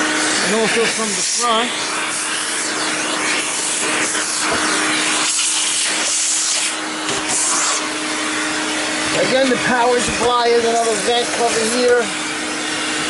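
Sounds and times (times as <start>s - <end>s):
vacuum cleaner running: 0.0s - 13.0s.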